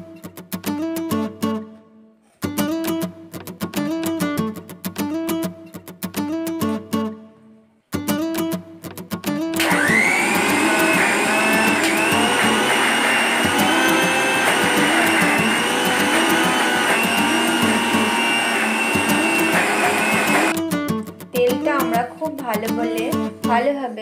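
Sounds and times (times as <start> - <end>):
mixer grinder motor whine: 9.6 - 20.6.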